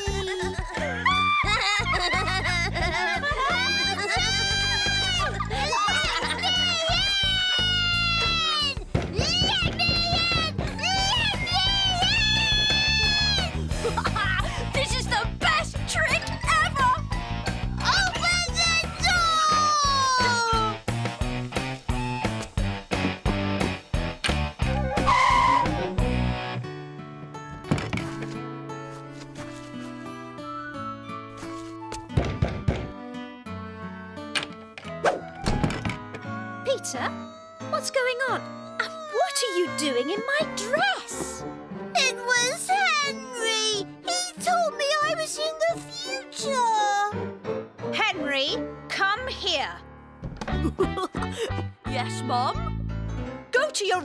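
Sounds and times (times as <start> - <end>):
cartoon boy crying: 0.0 - 14.4, 36.3 - 41.1
background music: 0.0 - 54.0
knock on a door: 32.2 - 32.9
door shutting with thud: 35.4 - 36.2.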